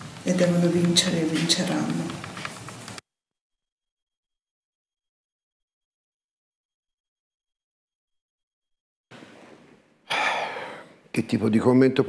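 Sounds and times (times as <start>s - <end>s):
faint room noise: 9.1s - 12.0s
man's quick intake of breath: 10.1s - 11.0s.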